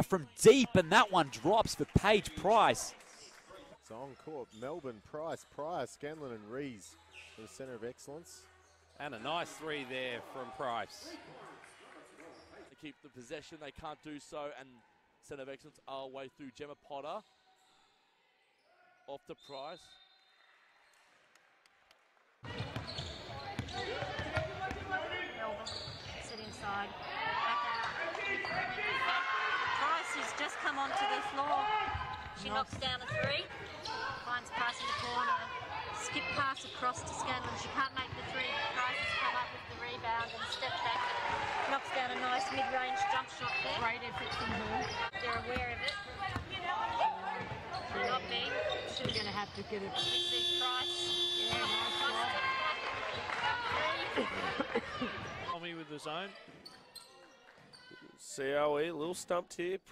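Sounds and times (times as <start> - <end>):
voices calling out: 0.0 - 2.9
players' voices: 0.0 - 8.4, 22.5 - 56.5.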